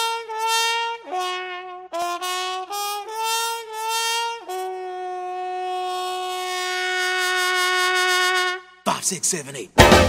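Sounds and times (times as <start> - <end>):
long held wind instrument note: 0.0 - 8.8.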